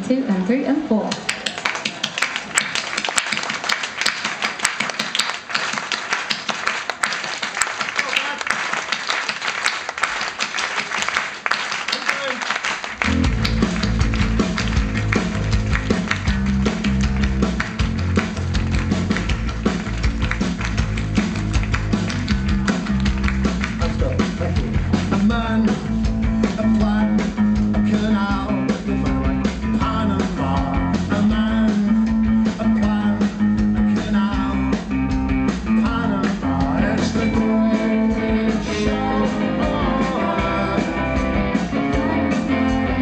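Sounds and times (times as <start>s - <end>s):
drum kit: 12.9s - 43.0s
bass guitar: 13.0s - 43.0s.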